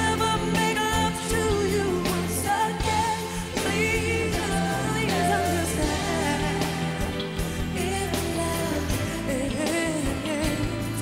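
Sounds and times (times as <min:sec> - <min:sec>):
band and orchestra ballad: 0:00.0 - 0:11.0
wordless singing: 0:00.0 - 0:11.0.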